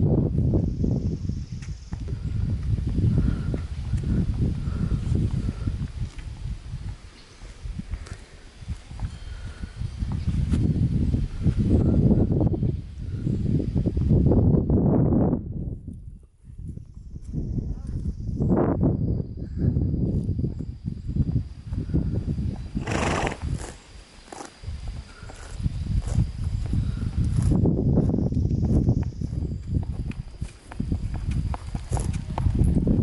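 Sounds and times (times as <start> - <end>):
horse hoofbeats on asphalt: 29.7 - 32.8.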